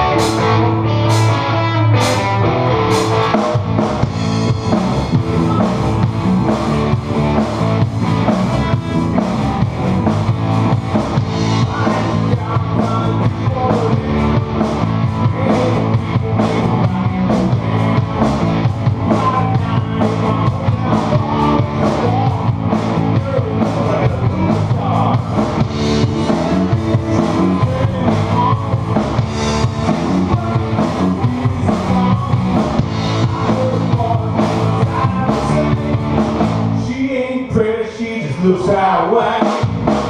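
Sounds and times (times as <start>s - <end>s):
drum kit beat: 0.0s - 37.0s, 39.3s - 40.0s
electric guitars: 0.0s - 37.0s.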